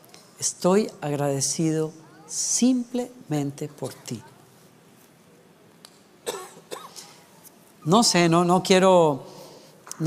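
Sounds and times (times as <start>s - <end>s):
person speaking: 0.3s - 4.7s
man clearing his throat: 6.2s - 7.2s
man coughing: 6.2s - 7.2s.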